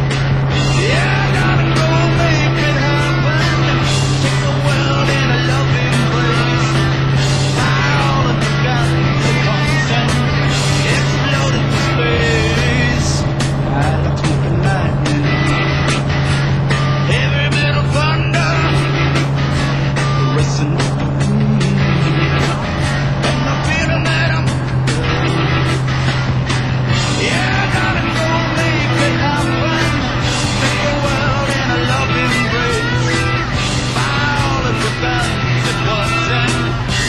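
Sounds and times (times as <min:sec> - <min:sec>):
light aircraft engine droning: 0:00.0 - 0:37.0
rock music with singing: 0:00.0 - 0:37.0.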